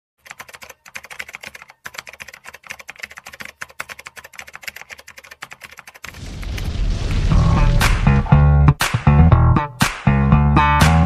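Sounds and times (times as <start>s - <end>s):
rapid keyboard typing: 0.2s - 6.4s.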